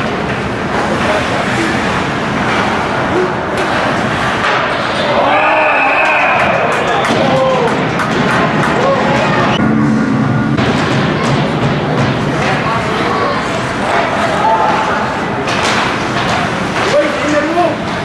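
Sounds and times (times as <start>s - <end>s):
sticks and puck against boards: 0.0s - 5.4s, 13.8s - 18.0s
rink crowd din: 0.0s - 18.0s
people shouting: 4.9s - 7.9s.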